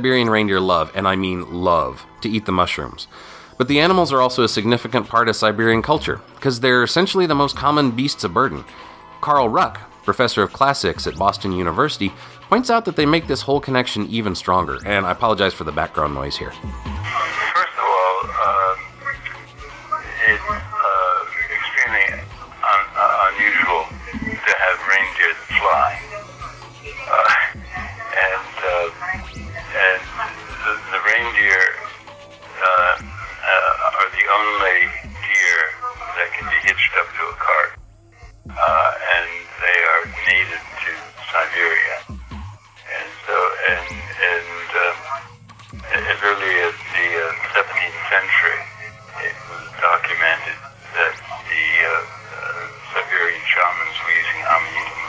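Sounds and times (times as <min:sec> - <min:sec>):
background music: 0:00.0 - 0:55.0
person talking over a phone line: 0:12.9 - 0:26.3, 0:26.9 - 0:37.8, 0:38.5 - 0:42.1, 0:42.8 - 0:55.0.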